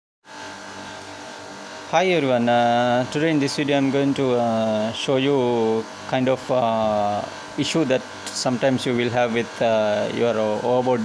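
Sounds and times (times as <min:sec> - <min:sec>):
low machinery hum: 0:00.3 - 0:11.0
man speaking: 0:01.9 - 0:11.0.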